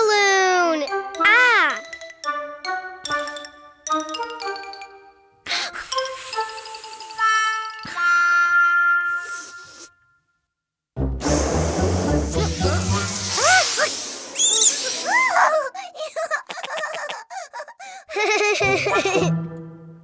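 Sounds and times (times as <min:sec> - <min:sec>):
cartoon sound effects: 0:12.1 - 0:15.5
rising and falling whistles: 0:14.2 - 0:15.2.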